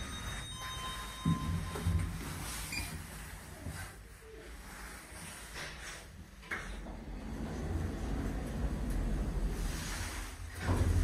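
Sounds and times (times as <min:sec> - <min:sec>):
elevator electronic chime: 0:00.0 - 0:02.2.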